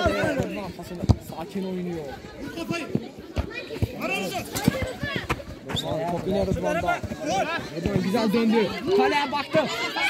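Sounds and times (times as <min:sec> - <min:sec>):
men talking and calling out: 0:00.0 - 0:10.0.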